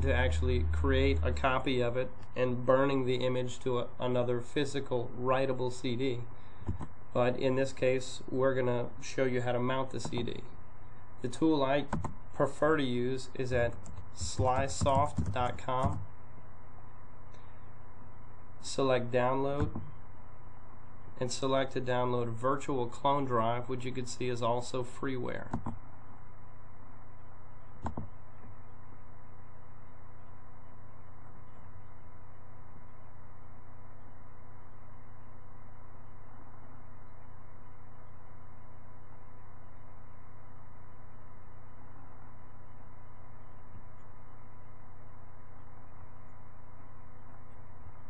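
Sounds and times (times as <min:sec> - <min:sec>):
electrical hum: 0:00.0 - 0:48.0
faint steady tones: 0:00.0 - 0:48.0.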